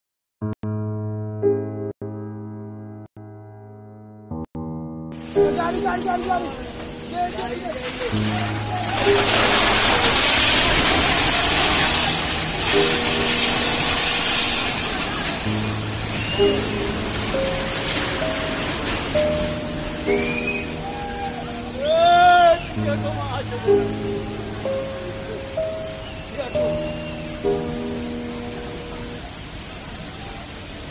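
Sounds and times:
heavy rain: 0:05.2 - 0:30.9
rushing flood water: 0:05.2 - 0:30.9.

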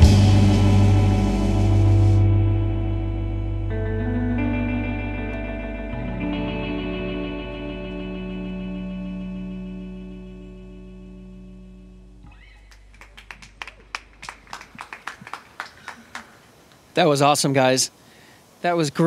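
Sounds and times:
electric guitar chord ringing: 0:00.0 - 0:12.6
people clapping sparsely: 0:12.3 - 0:16.5.

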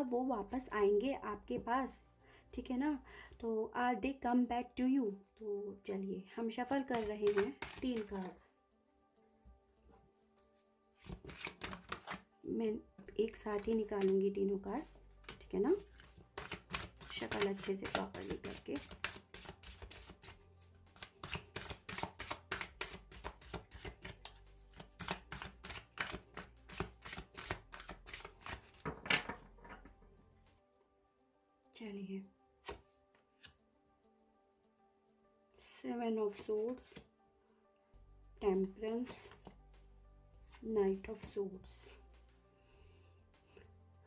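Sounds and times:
soft background music: 0:00.0 - 0:44.0
cards flicking and snapping: 0:06.9 - 0:08.3, 0:11.0 - 0:12.2, 0:13.6 - 0:14.2, 0:15.2 - 0:20.4, 0:21.0 - 0:29.0, 0:32.6 - 0:32.8.

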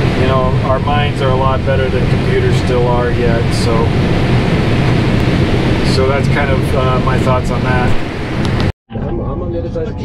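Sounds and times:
combine harvester drone: 0:00.0 - 0:10.0.

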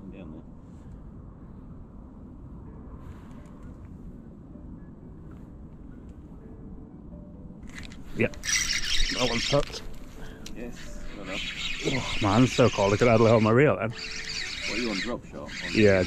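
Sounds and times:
low background rumble: 0:00.0 - 0:16.0.

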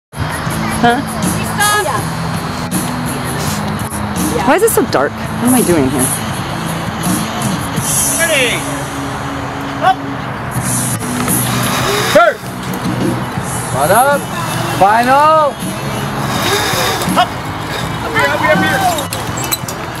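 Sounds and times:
background music with low drone: 0:00.2 - 0:20.0
voices calling out: 0:00.3 - 0:20.0.

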